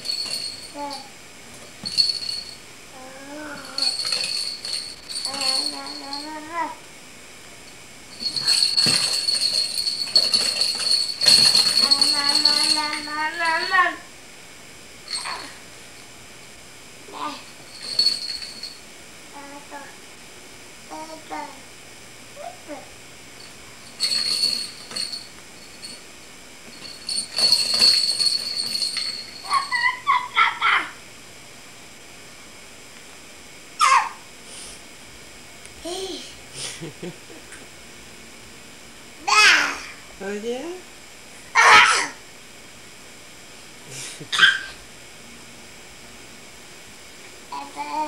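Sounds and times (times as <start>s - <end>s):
baby squealing and whining: 33.8s - 34.2s, 41.6s - 42.2s, 44.3s - 44.8s.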